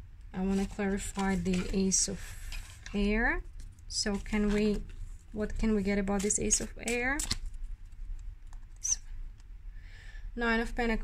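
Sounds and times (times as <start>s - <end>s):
low steady hum: 0.0s - 11.0s
card rustling on cloth: 0.4s - 8.1s.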